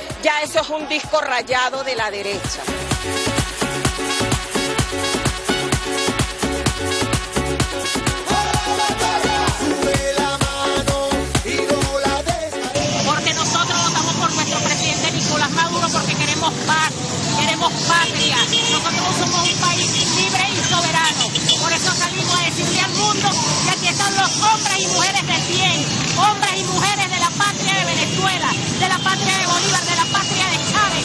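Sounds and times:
crowd noise: 0.0 - 2.9, 8.1 - 31.0
woman speaking loudly: 13.0 - 31.0.

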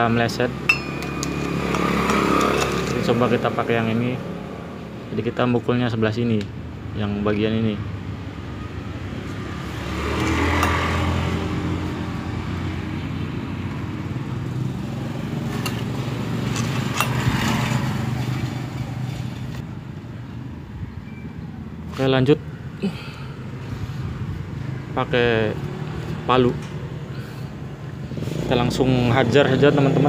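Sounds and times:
screwdriver clicking on metal: 0.7 - 3.0.

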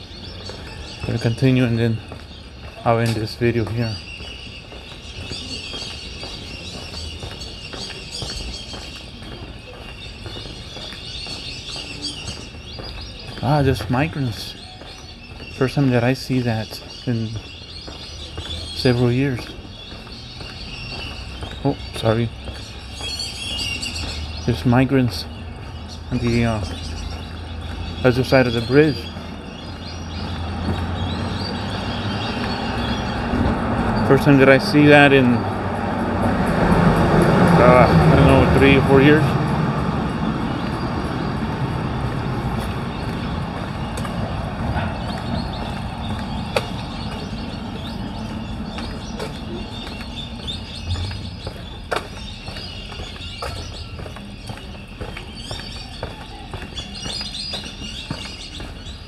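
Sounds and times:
birds chirping and calling: 0.0 - 59.0
faint footsteps on pavement: 0.0 - 59.0
traffic rumble and hiss: 0.0 - 59.0
steady low rumble: 29.2 - 56.0.

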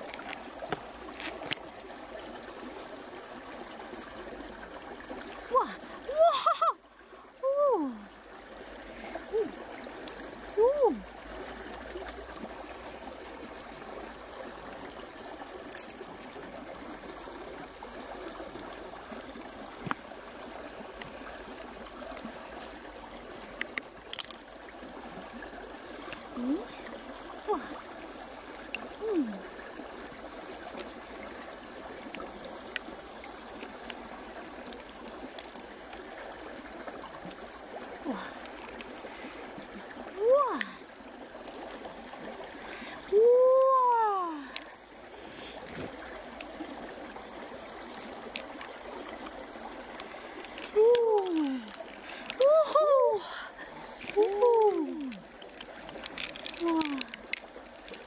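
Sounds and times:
stream water running: 0.0 - 58.0
person exclaiming: 7.4 - 8.0, 10.6 - 11.0, 43.2 - 44.4, 52.4 - 53.4
faint clicks of handling: 54.0 - 58.0.

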